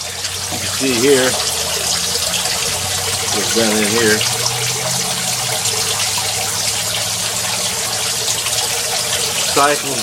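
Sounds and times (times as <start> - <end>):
water trickling into tank: 0.0 - 10.0.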